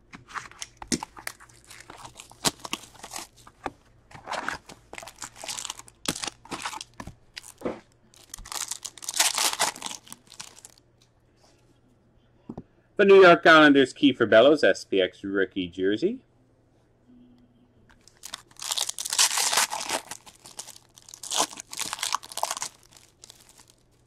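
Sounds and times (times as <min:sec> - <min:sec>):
foil packs crinkling: 0:00.4 - 0:03.6, 0:04.2 - 0:07.6, 0:08.2 - 0:10.8, 0:18.0 - 0:24.0.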